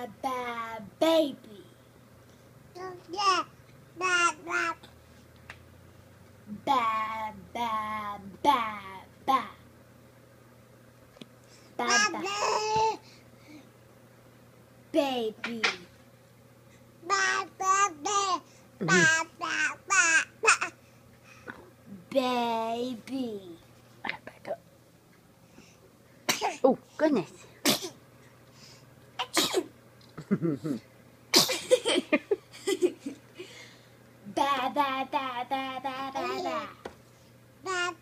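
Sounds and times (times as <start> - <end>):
person coughing: 18.8 - 19.2, 26.3 - 26.6, 27.6 - 28.0, 29.2 - 29.7, 30.3 - 32.0
person saying oh: 18.8 - 19.2.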